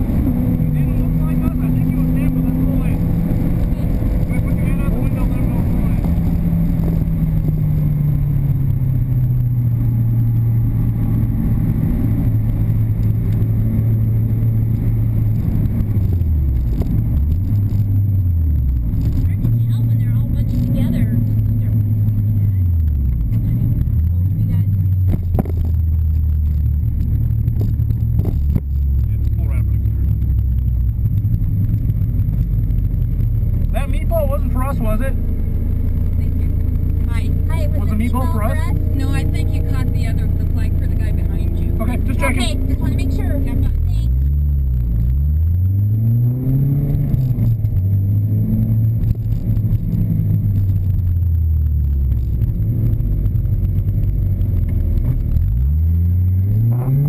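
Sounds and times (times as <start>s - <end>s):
car engine revving: 0.0s - 57.0s
voices: 36.1s - 44.1s.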